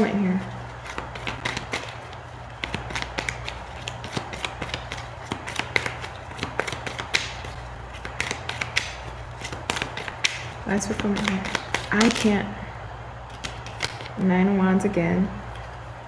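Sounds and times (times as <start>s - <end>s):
cards being shuffled: 0.0s - 12.4s, 13.2s - 14.3s
steady low hum: 0.0s - 16.0s.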